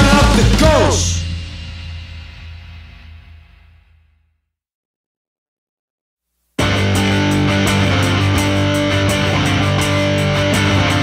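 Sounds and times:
blues-rock chord ringing out: 6.6 - 11.0.

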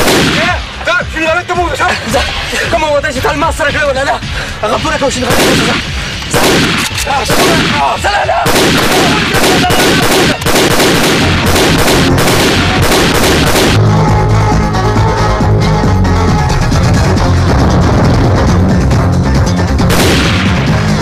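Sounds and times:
rapid gunfire: 0.0 - 0.6, 5.3 - 13.8, 19.9 - 21.0
background music: 0.0 - 21.0.

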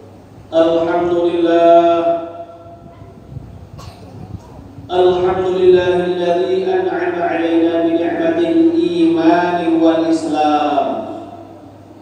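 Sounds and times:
low room noise: 0.0 - 12.0
short cough: 3.8 - 4.6.

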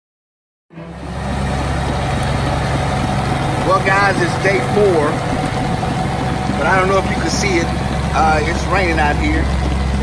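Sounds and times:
diesel engine running: 0.7 - 10.0.

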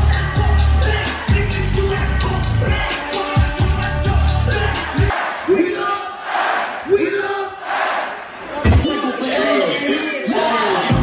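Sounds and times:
crowd shouting in unison: 4.2 - 9.9
loud shouted calls: 4.5 - 10.8.

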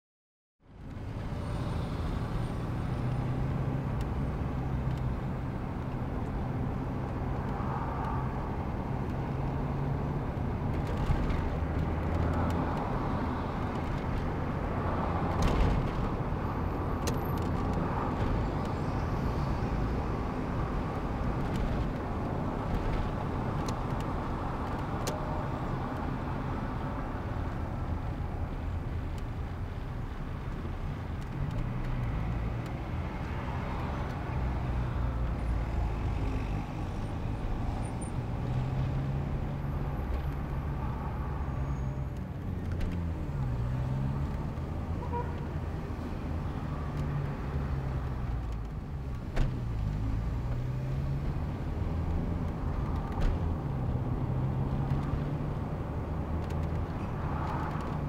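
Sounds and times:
car engine and road noise: 0.6 - 58.0.

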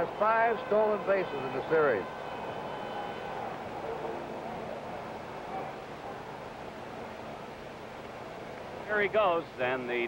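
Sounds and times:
faint distant voices: 0.0 - 10.0
steady background hiss: 0.0 - 10.0.

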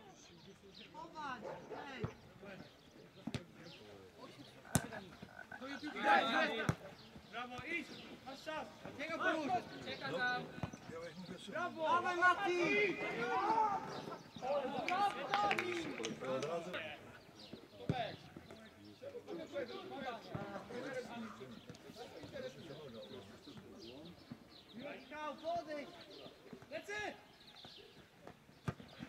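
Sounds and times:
players calling and shouting: 0.0 - 29.0.

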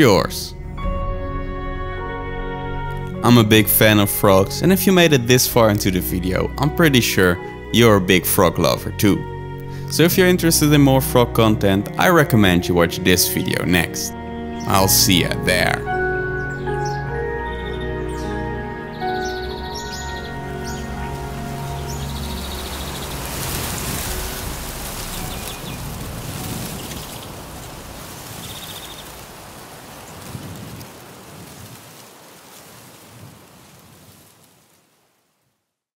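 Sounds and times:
background music: 0.0 - 28.0
steady outdoor hiss: 3.2 - 35.7.

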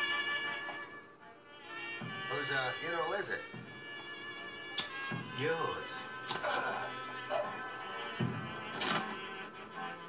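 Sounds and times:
film soundtrack music: 0.0 - 10.0.

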